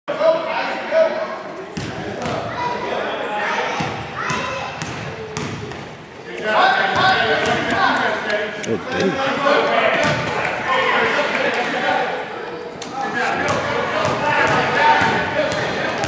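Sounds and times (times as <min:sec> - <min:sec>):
echoing indistinct voices: 0:00.1 - 0:16.0
basketball bouncing on gym floor: 0:01.8 - 0:02.4, 0:03.8 - 0:05.9.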